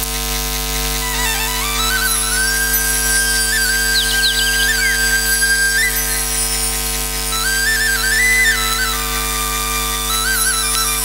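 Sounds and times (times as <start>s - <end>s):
keyboard drone: 0.6s - 11.0s
flute melody with trills: 1.0s - 11.0s.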